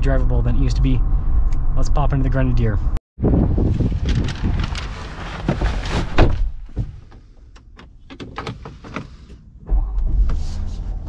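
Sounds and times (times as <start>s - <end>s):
deep low rumble: 0.0s - 6.7s, 9.6s - 11.0s.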